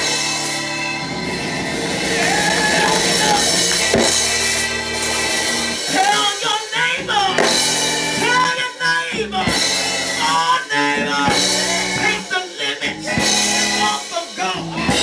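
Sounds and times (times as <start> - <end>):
drums: 0.0 - 15.0
live instrumental accompaniment: 0.0 - 15.0
person singing into a microphone: 5.9 - 15.0.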